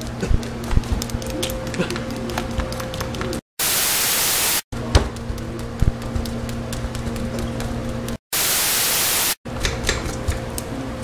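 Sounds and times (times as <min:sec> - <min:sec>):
tv static white noise: 0:03.6 - 0:04.6, 0:07.2 - 0:09.4.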